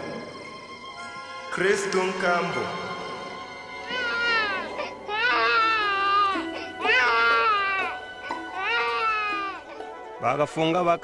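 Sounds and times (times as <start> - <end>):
soft background music: 0.0 - 11.0
newborn baby crying: 3.7 - 10.0.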